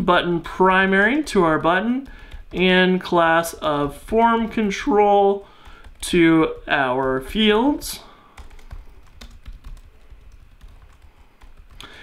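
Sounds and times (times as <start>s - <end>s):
computer keyboard typing: 0.6s - 12.0s.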